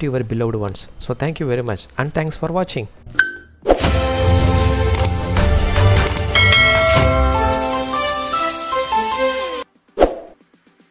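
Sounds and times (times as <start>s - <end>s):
low bass: 3.9s - 7.8s
chiming bell-like notes: 6.4s - 9.6s.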